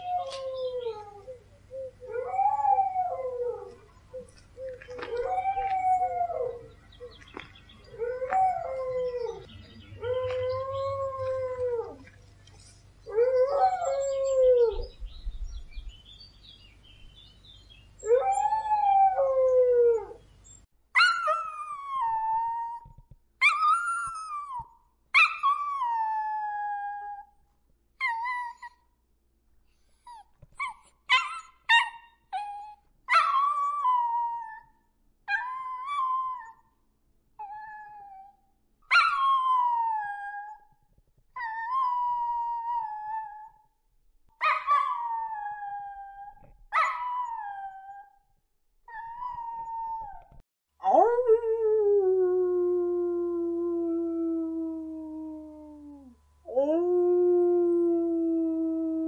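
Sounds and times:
dog howling: 0:02.1 - 0:06.7
dog yipping: 0:30.2 - 0:33.6.

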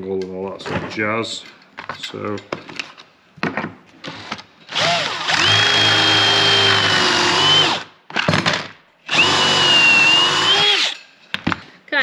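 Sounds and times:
cordless drill whining: 0:04.2 - 0:07.9, 0:09.1 - 0:11.0.

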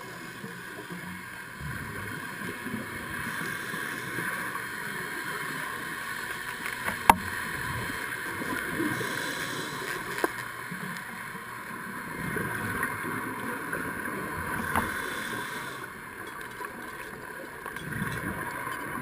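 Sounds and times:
muffled underwater hiss: 0:00.0 - 0:19.0.

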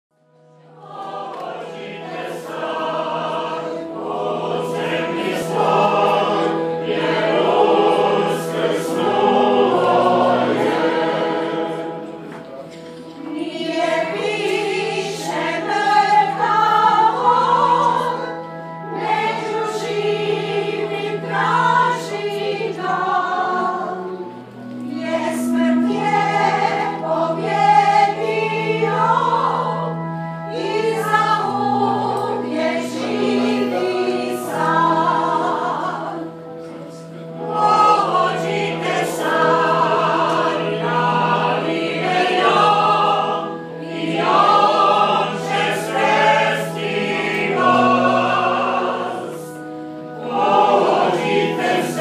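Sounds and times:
choir singing a hymn: 0:00.4 - 0:52.0.

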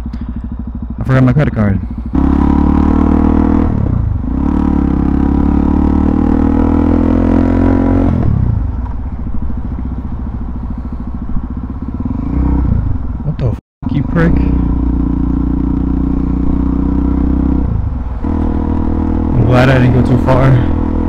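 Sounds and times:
motorcycle engine pulling hard: 0:00.0 - 0:13.3, 0:13.9 - 0:21.0.

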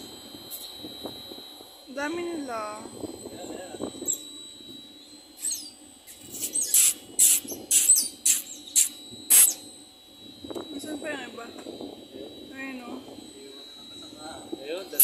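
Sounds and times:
otters squeaking: 0:05.4 - 0:09.6.

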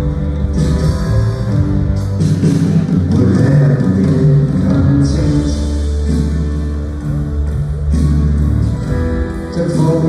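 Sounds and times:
live rock band playing: 0:00.0 - 0:10.0
steady bass line: 0:00.0 - 0:10.0.

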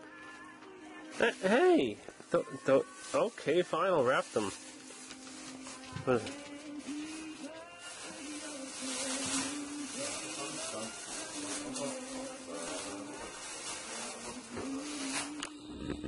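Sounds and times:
plastic bag rustling: 0:00.2 - 0:15.7.

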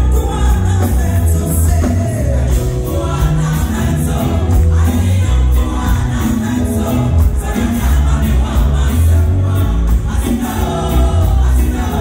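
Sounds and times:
band with keyboards and drums: 0:00.0 - 0:12.0
gospel choir singing: 0:00.0 - 0:12.0.

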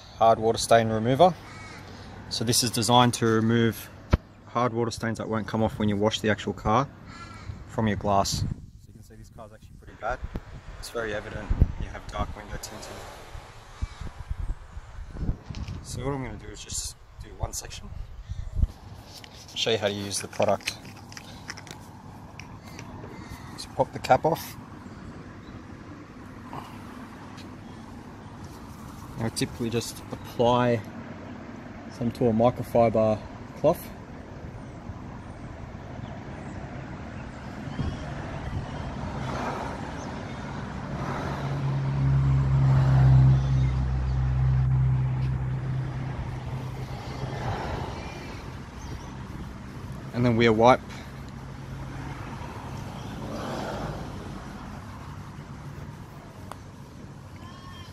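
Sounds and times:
outdoor background noise: 0:00.0 - 0:57.9
vehicle engine hum: 0:09.6 - 0:32.1, 0:33.2 - 0:57.9.

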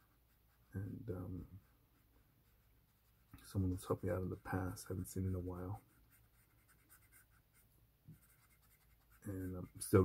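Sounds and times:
marker scratching on paper: 0:00.0 - 0:10.0.

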